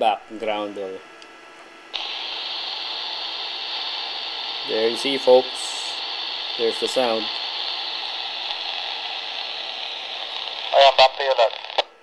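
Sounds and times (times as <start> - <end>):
radio receiver hiss: 0.0 - 12.0.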